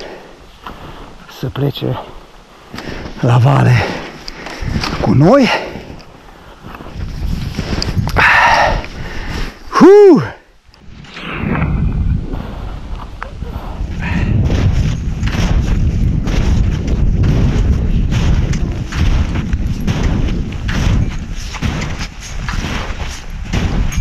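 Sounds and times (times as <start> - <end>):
trekking poles planted in snow: 0.0 - 10.9, 12.0 - 24.0
wind buffeting microphone: 3.6 - 9.6, 10.8 - 24.0.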